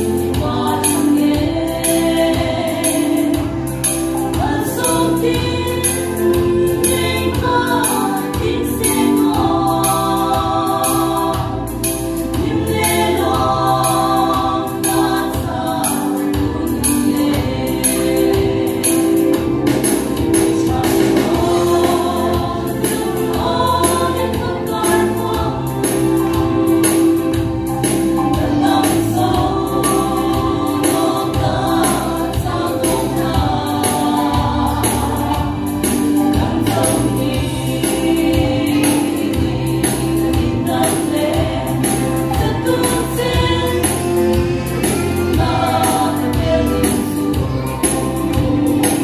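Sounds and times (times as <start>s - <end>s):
steady percussion beat: 0.0s - 49.0s
women singing in harmony: 0.0s - 49.0s.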